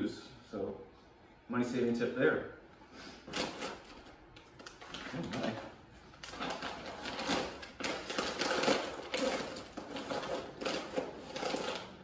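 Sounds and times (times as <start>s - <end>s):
plastic packaging crinkling: 3.3s - 12.0s.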